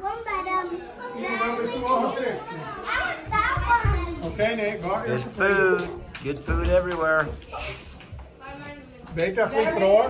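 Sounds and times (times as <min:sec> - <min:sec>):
chatter of adults and children: 0:00.0 - 0:10.0.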